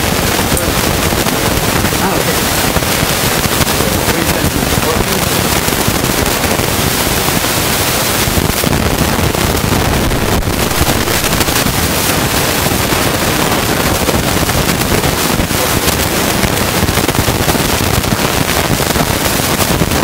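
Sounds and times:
loud crackling static: 0.0s - 20.0s.

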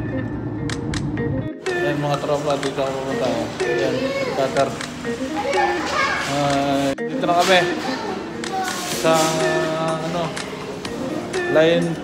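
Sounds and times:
faint background music: 0.0s - 12.0s
voices talking: 1.7s - 12.0s
children's voices: 3.3s - 10.2s.

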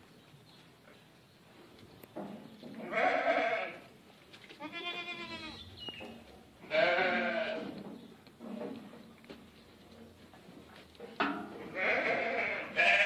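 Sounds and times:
goat bleating: 2.8s - 3.9s, 4.6s - 5.6s, 6.6s - 7.7s, 11.7s - 13.0s.

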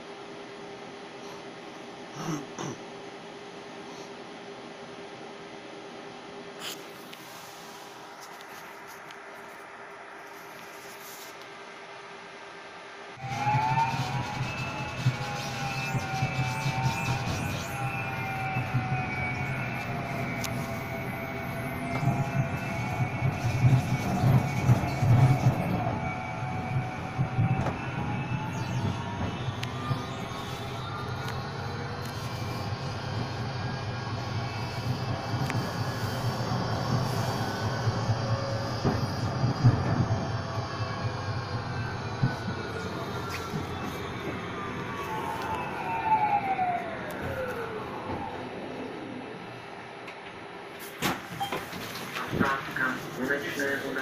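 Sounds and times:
tram motors whining: 12.8s - 54.0s
tram rumbling on rails: 13.2s - 54.0s.

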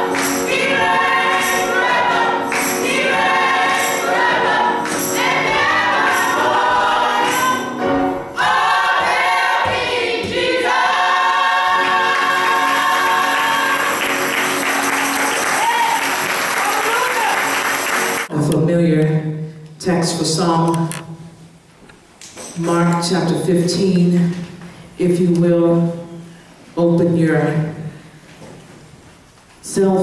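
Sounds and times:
jingles on the beat: 0.0s - 7.8s, 13.9s - 16.2s
gospel singing with accompaniment: 0.0s - 18.3s
applause: 12.6s - 18.3s.

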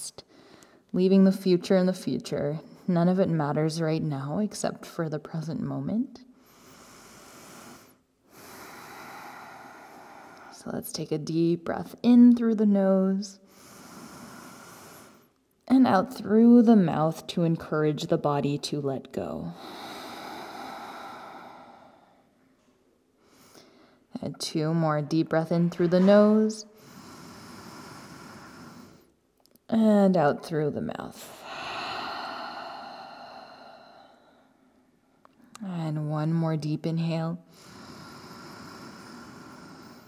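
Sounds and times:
woman inhaling through nose: 6.4s - 10.6s, 13.5s - 15.4s, 19.6s - 22.3s, 26.7s - 29.1s, 31.4s - 34.6s, 37.5s - 40.0s.

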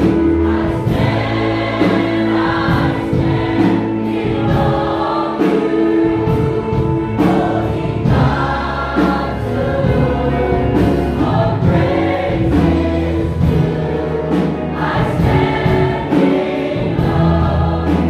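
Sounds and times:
low accompaniment: 0.0s - 18.0s
mixed choir singing: 0.0s - 18.0s.

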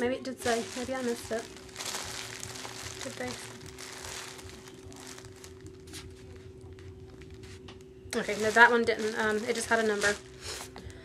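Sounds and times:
faint steady hum: 0.0s - 11.0s
yarn balls crinkling and rustling: 0.3s - 7.5s, 8.2s - 10.9s.

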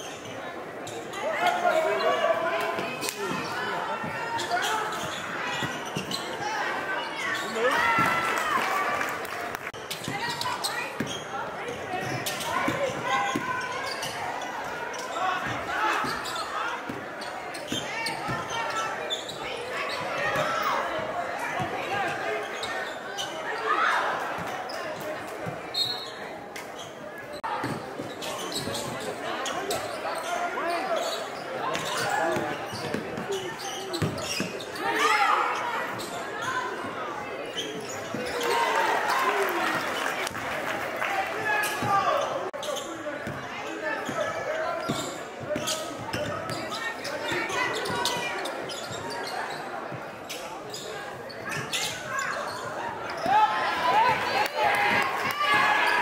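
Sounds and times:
crowd voices and shouts: 0.0s - 56.0s.

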